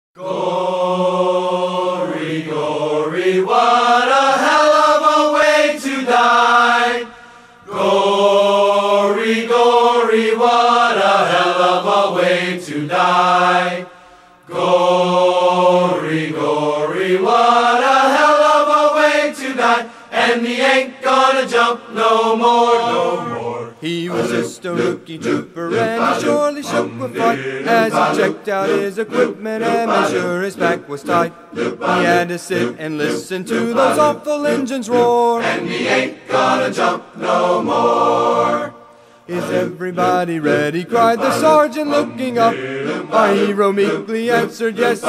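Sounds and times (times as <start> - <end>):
wordless chant-like singing: 0.2 - 45.0.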